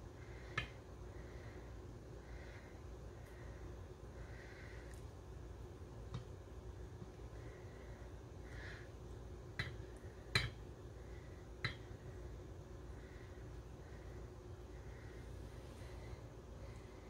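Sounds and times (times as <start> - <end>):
low room hum: 0.0 - 17.0
spatula tapping glass cup: 9.6 - 10.6.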